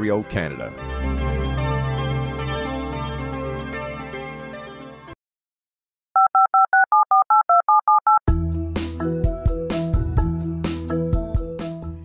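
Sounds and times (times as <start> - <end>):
telephone keypad beeps: 6.2 - 8.2.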